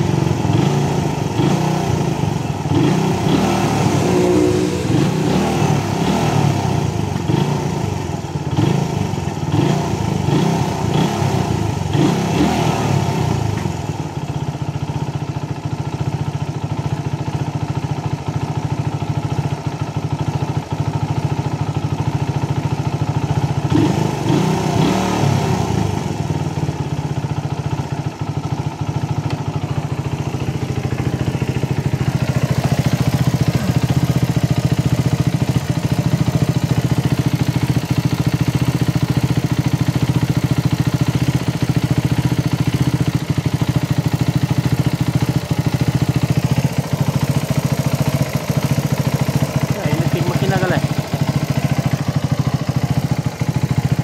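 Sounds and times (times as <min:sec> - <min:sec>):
motorcycle engine idling unevenly: 0:00.0 - 0:54.0.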